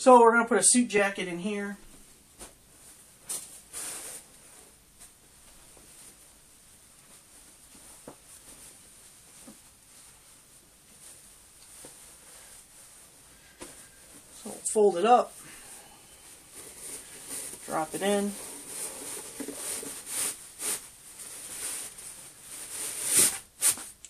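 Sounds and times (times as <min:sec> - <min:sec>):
jacket rustling and clicks: 0:02.0 - 0:15.4, 0:16.2 - 0:24.0.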